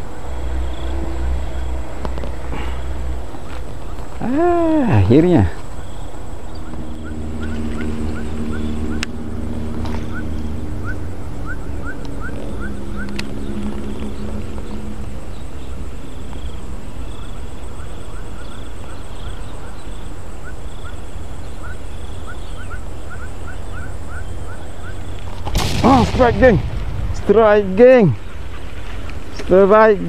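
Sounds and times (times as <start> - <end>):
faint hum: 0.0 - 28.6
low rumble: 5.8 - 18.4, 24.6 - 29.6
animal rising chirps: 5.8 - 19.8.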